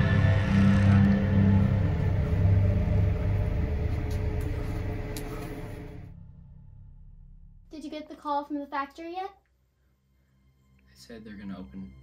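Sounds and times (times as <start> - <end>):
low rumbling horror drone: 0.0 - 8.0.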